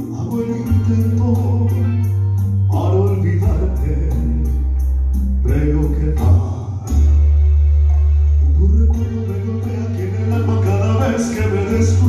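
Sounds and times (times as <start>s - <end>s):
man singing: 0.0s - 7.2s, 8.4s - 12.0s
electronic keyboard chords: 0.0s - 12.0s.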